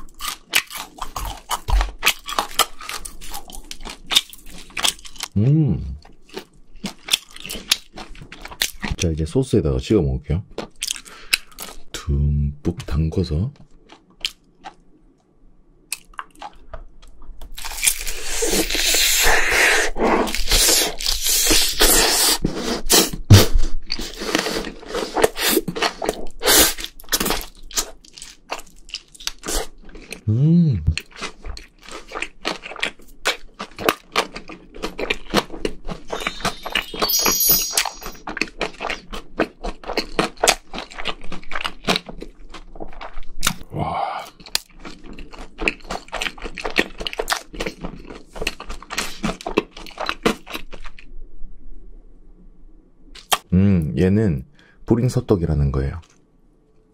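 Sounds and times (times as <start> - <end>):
chewing: 0.0 - 9.1, 13.6 - 14.9, 15.9 - 19.2, 23.9 - 30.2, 30.9 - 36.9, 38.2 - 43.6, 44.2 - 51.1
crunching fried chicken: 0.0 - 9.3, 15.9 - 22.4, 23.5 - 30.3, 30.9 - 36.9, 38.2 - 51.1
person humming: 5.4 - 6.0, 30.3 - 31.0, 53.5 - 53.9.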